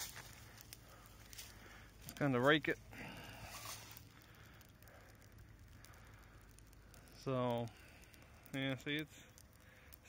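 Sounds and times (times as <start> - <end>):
rake scraping through dry leaves: 3.5 - 4.0.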